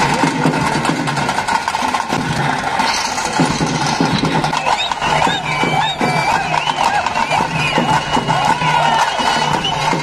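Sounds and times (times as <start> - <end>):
loud fast drumming: 0.0 - 10.0.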